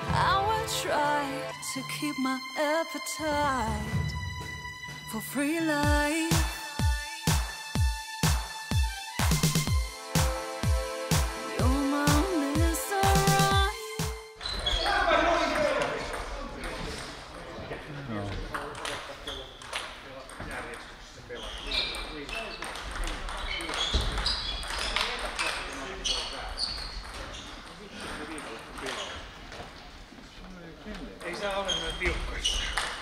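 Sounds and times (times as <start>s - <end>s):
table tennis balls clicking: 21.8s - 25.7s.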